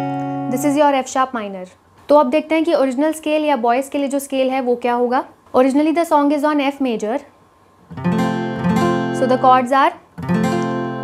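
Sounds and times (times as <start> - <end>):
acoustic guitar chord strum: 0.0 - 0.8, 7.9 - 11.0.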